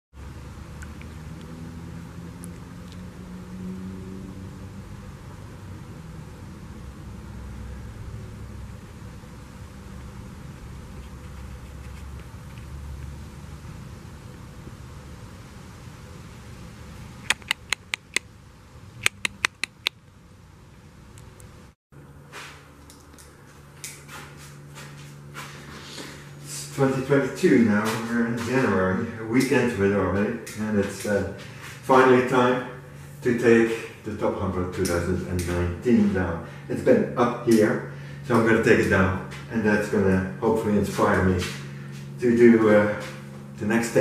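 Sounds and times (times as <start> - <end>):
low rumble of distant traffic: 0.1 - 44.0
sharp clicks: 17.2 - 18.3, 19.0 - 20.0.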